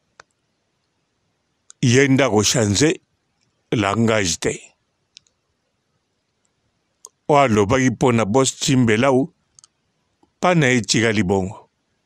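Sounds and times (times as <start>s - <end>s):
faint click: 0.1s - 1.0s, 5.1s - 5.4s
person speaking: 1.7s - 3.0s, 3.7s - 4.7s, 7.1s - 9.3s, 10.4s - 11.6s.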